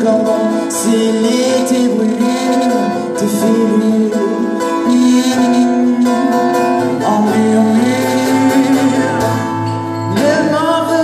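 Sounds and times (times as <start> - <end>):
acoustic guitar: 0.0 - 11.0
electric guitar: 0.0 - 11.0
person singing: 0.0 - 11.0.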